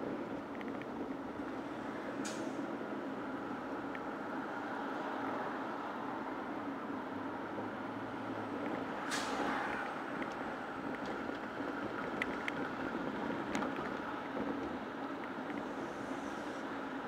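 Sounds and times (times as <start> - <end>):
road noise inside moving car: 0.0 - 17.0
bus air brakes hissing: 9.0 - 9.7.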